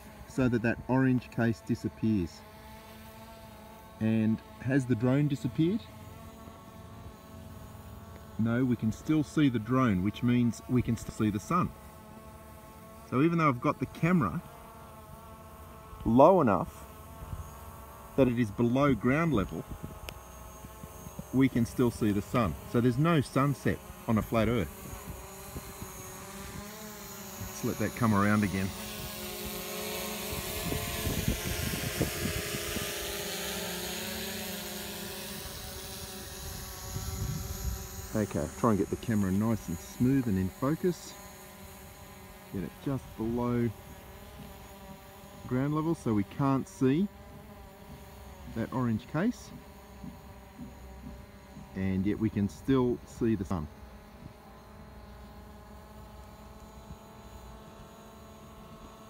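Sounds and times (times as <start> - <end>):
drone propellers buzzing: 0.0 - 59.0.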